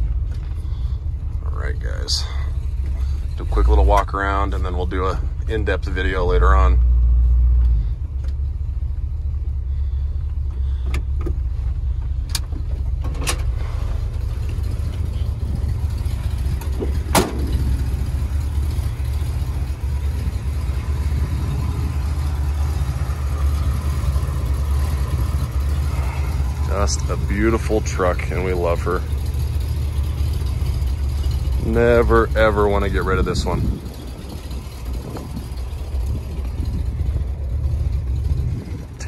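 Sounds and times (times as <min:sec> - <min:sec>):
pickup engine idling: 0:00.0 - 0:39.0
car door clack: 0:16.8 - 0:17.7.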